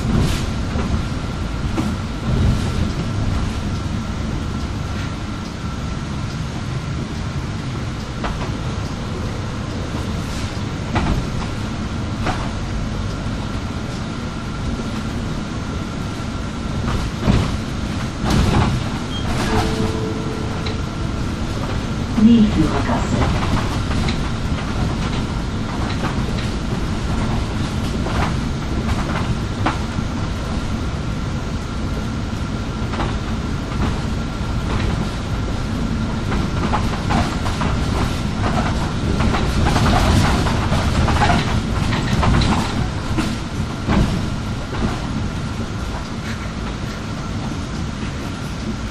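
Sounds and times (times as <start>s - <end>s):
bus body rattling and knocking: 0.0s - 48.9s
bus engine and road rumble: 0.0s - 48.9s.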